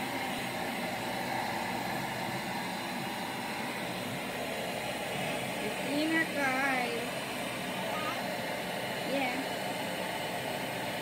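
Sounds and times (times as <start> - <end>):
stick vacuum cleaner running: 0.0 - 11.0.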